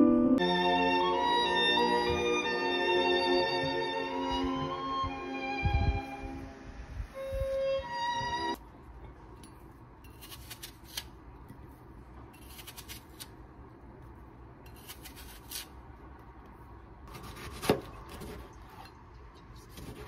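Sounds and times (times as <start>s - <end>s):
knife slicing on cutting board: 10.1s - 11.1s, 14.7s - 15.7s, 17.1s - 18.5s.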